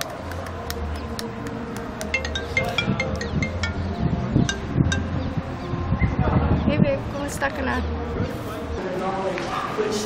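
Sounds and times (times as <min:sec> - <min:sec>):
phone ringtone chime notes: 0:02.2 - 0:05.1.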